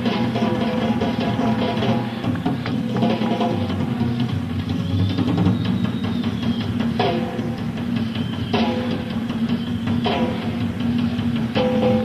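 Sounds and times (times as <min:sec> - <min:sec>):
drum solo: 0:00.0 - 0:12.0.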